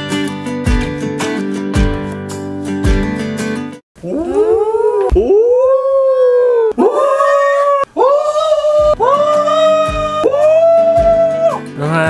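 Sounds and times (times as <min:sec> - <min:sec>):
person howling in falsetto: 0:04.0 - 0:11.7.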